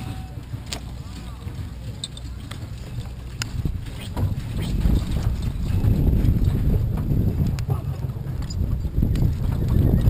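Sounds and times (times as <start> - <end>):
low rumble: 0.0 - 10.0
clicks from horse gear: 0.6 - 0.9, 1.9 - 6.7.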